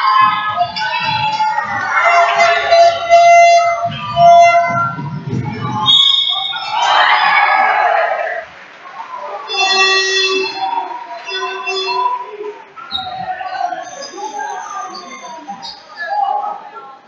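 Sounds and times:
people shouting: 0.0 - 12.3.

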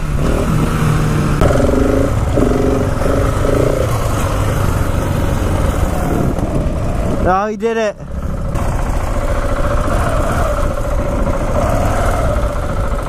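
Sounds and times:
wind noise on microphone: 0.0 - 7.5, 8.2 - 13.0
motorcycle engine running: 0.0 - 13.0.

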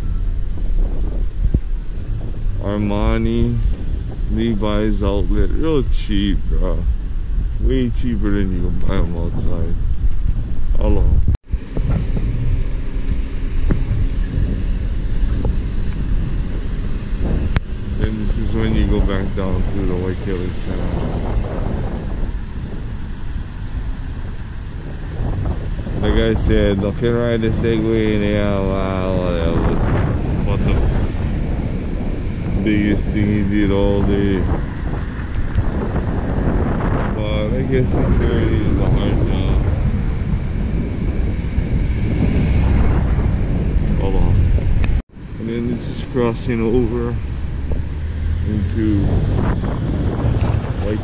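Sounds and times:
car traffic rumbling: 0.0 - 51.0
wind on microphone: 0.0 - 51.0.

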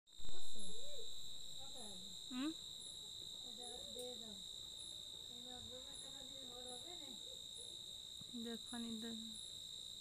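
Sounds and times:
crickets trilling: 0.1 - 10.0
insect chirping: 0.1 - 10.0.

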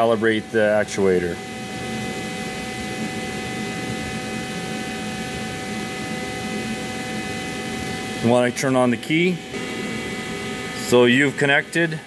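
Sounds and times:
constant whining tones: 0.0 - 12.0
machine hum and hiss: 0.0 - 12.0.

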